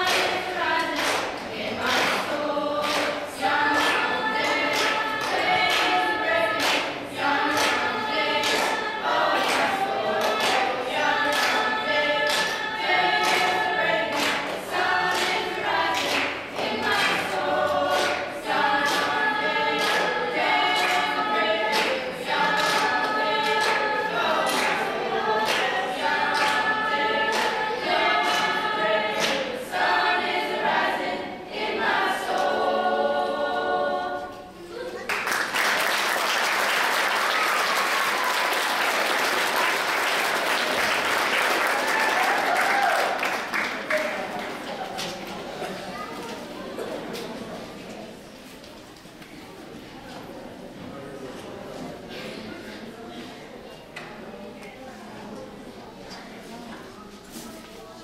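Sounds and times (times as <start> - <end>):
hand claps on the beat: 0.0 - 27.6, 28.2 - 29.5
school choir singing: 0.0 - 48.5
audience applauding: 35.0 - 44.8.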